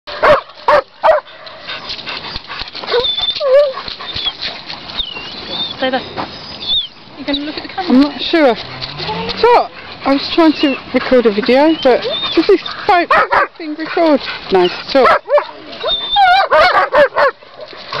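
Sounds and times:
dogs barking: 0.1 - 1.3, 11.7 - 13.6, 15.0 - 18.0
dog whining and yelping: 1.1 - 7.6, 10.4 - 13.0, 15.3 - 17.3.

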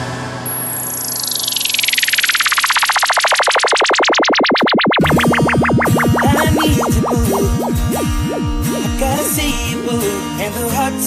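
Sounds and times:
warbling synthesizer sweep: 0.8 - 9.9.

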